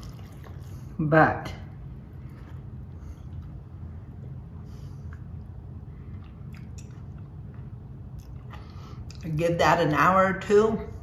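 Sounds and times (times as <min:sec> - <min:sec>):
person chewing food: 0:00.0 - 0:00.9, 0:01.9 - 0:09.2
soft mouth clicks: 0:06.2 - 0:09.2.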